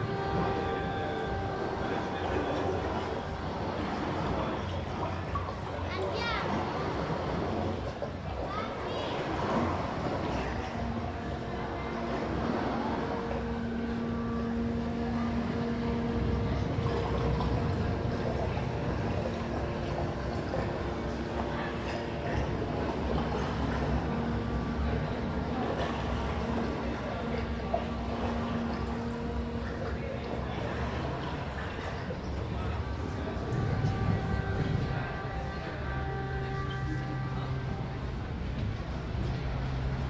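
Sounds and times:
steady two-pitch hum: 0:00.0 - 0:05.9, 0:09.4 - 0:40.0
continuous low rumble: 0:00.0 - 0:40.0.

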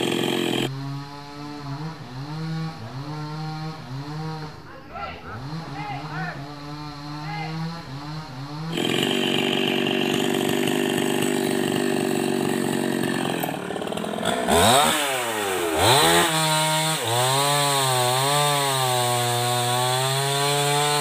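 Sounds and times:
chainsaw cutting wood: 0:00.0 - 0:04.6, 0:05.4 - 0:21.0
chainsaw revving and idling: 0:00.0 - 0:21.0.

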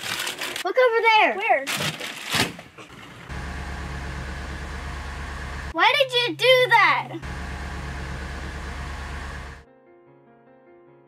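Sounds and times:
bus engine rumbling: 0:02.7 - 0:09.6.

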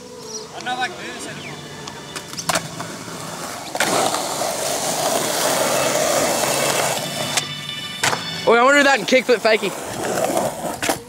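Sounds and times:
skateboard wheels rolling on concrete: 0:00.0 - 0:11.0.

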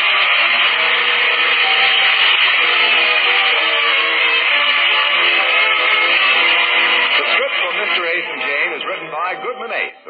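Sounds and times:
closing theme music: 0:00.0 - 0:10.0
announcer speaking on radio: 0:07.1 - 0:10.0.

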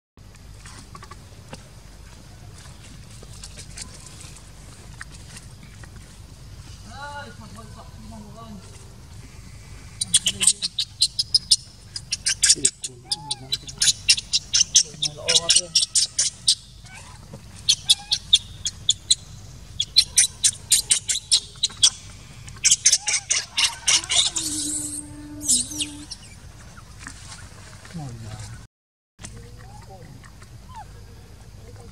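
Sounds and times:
bird chirping: 0:09.3 - 0:27.5.

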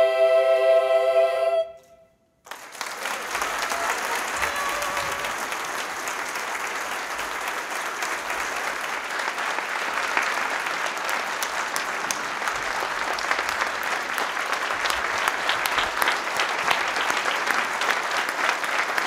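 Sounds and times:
audience applauding: 0:02.4 - 0:19.0.

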